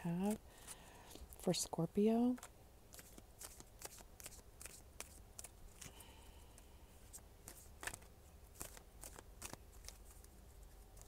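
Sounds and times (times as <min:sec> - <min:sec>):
cards being shuffled: 0:02.3 - 0:06.0, 0:07.0 - 0:11.0.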